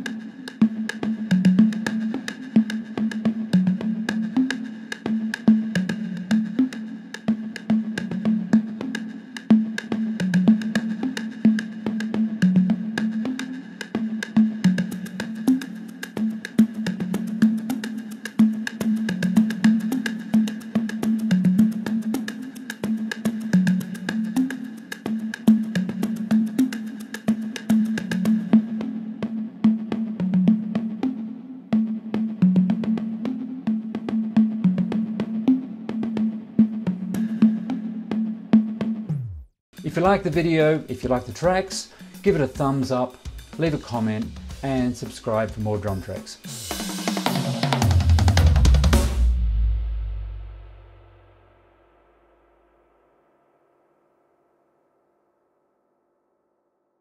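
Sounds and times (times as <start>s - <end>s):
low drum machine hits: 46.7s - 51.4s.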